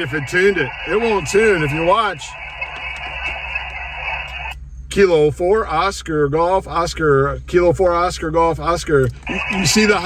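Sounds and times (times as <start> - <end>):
radio band noise hiss: 0.0 - 4.6, 9.1 - 10.0.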